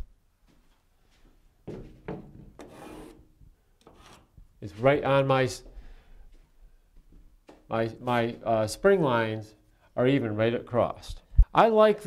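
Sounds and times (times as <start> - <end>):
spirit level scraping on drywall: 2.6 - 3.3, 3.9 - 4.3.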